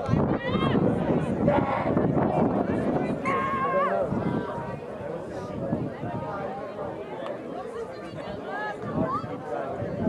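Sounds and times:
background chatter: 0.0s - 10.0s
shrill high-voiced shout: 3.2s - 3.9s.

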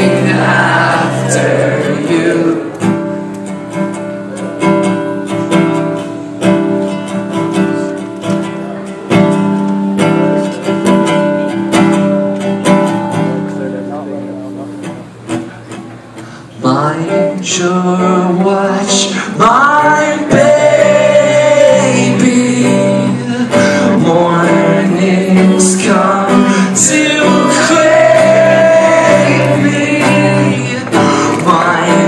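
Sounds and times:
person singing: 0.0s - 3.1s, 16.6s - 32.0s
acoustic guitar strumming: 0.0s - 32.0s.

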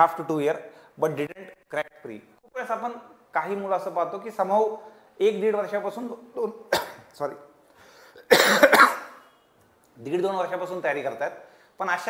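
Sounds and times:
man coughing: 6.7s - 7.1s, 8.2s - 9.4s.

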